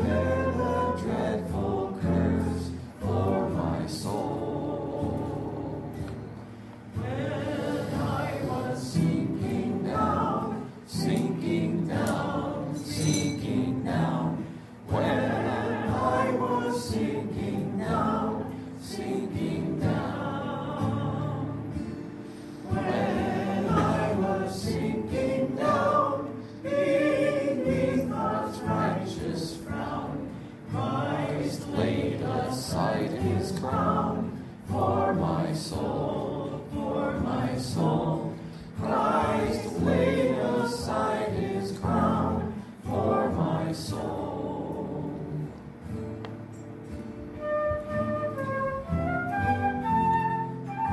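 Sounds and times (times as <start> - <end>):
group singing a hymn: 0.0 - 46.0.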